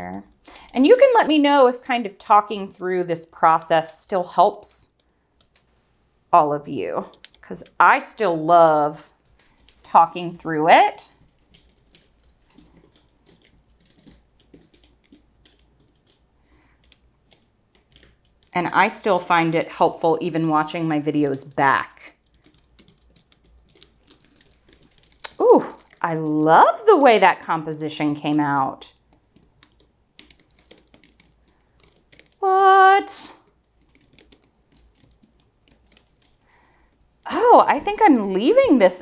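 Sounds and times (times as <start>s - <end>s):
faint small ticks and clicks: 0.0s - 0.8s, 4.9s - 5.7s, 7.1s - 7.8s, 9.0s - 9.9s, 11.1s - 19.2s, 21.4s - 27.4s, 28.0s - 32.4s, 33.4s - 37.1s.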